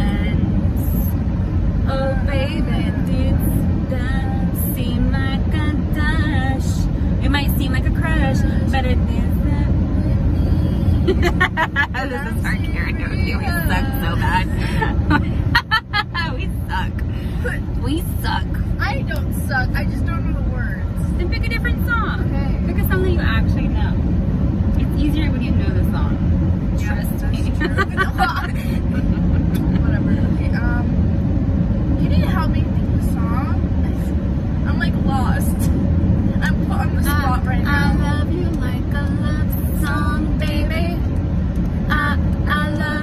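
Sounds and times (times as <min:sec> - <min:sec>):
car road and engine rumble: 0:00.0 - 0:43.0
women laughing: 0:11.0 - 0:12.4, 0:13.5 - 0:16.5, 0:27.5 - 0:30.1.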